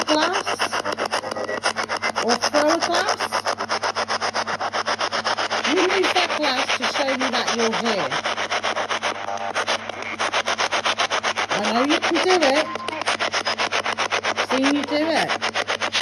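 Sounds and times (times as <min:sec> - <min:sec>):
choppy radio static: 0:00.0 - 0:16.0.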